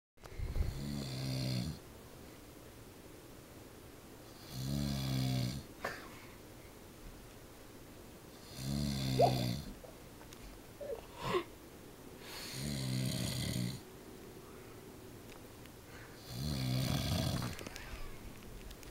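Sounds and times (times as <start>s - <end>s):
man snoring: 0.7s - 1.8s, 4.4s - 5.7s, 8.5s - 9.6s, 12.4s - 13.8s, 16.2s - 17.5s.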